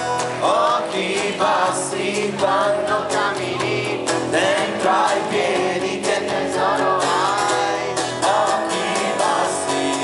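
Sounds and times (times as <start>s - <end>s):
strummed acoustic guitars: 0.0s - 10.0s.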